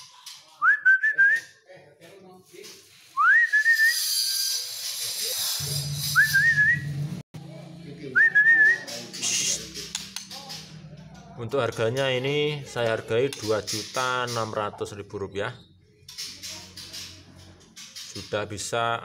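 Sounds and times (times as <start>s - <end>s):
person whistling: 3.2s - 4.0s, 6.2s - 6.9s.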